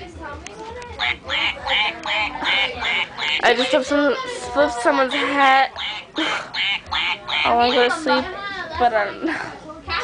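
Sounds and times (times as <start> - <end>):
toy duck quacking: 1.0 - 3.9, 4.9 - 8.2.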